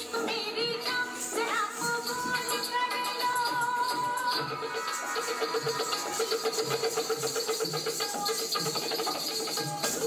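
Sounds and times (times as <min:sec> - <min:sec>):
jingling high percussion: 0:00.0 - 0:10.0.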